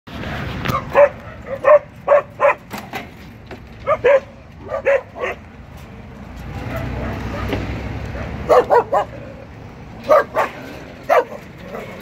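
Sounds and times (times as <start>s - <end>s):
din of dogs barking: 0.7s - 2.7s, 3.8s - 5.5s, 6.6s - 9.4s, 10.0s - 12.0s.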